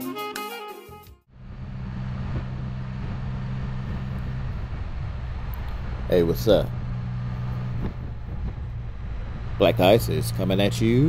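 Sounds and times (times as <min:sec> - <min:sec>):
engine droning at cruise: 0:01.3 - 0:11.0
road noise: 0:01.3 - 0:11.0
wind noise: 0:01.4 - 0:11.0.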